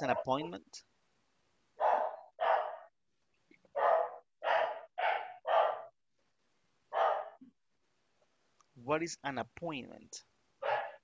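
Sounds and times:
dog barking: 0:01.8 - 0:02.9, 0:03.7 - 0:05.9, 0:06.9 - 0:07.4, 0:10.6 - 0:11.0.

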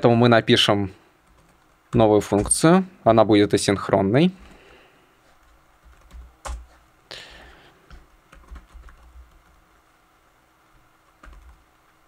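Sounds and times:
computer keyboard typing: 0:01.2 - 0:02.6, 0:05.4 - 0:06.8, 0:07.9 - 0:09.6, 0:11.0 - 0:11.6.

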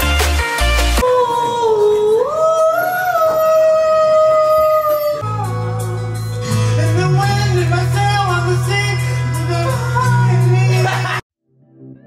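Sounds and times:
backing track with bass: 0:00.0 - 0:01.0, 0:05.2 - 0:11.2
person singing karaoke: 0:01.0 - 0:11.2.

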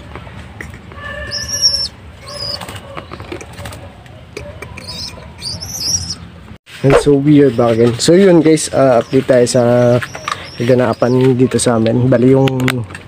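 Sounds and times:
high squeaky pigeon calls: 0:00.9 - 0:12.3
pigeons scuffling: 0:02.2 - 0:04.0
wings flapping: 0:02.2 - 0:04.0.

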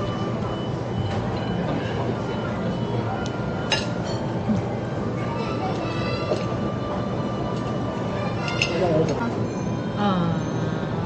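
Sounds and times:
low rumble of dining hall: 0:00.0 - 0:11.0.

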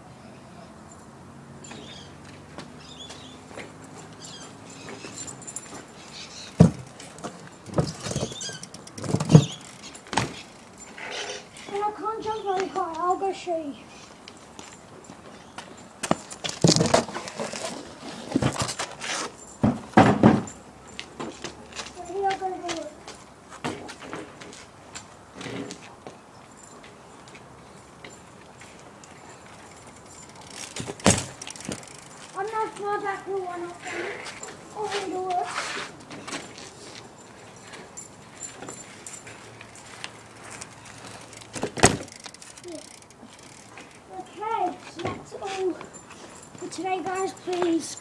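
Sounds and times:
bike knocking against a ramp: 0:06.5 - 0:10.5, 0:19.6 - 0:20.6, 0:29.7 - 0:33.0, 0:40.5 - 0:43.9
sharp knocks and clicks: 0:06.6 - 0:10.8
person talking: 0:11.7 - 0:13.8, 0:22.0 - 0:23.0, 0:32.3 - 0:34.1, 0:34.7 - 0:35.6, 0:44.1 - 0:45.9, 0:46.6 - 0:48.0.

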